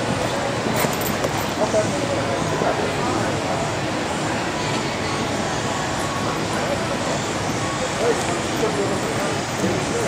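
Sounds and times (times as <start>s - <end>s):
steady noise: 0.0s - 10.0s.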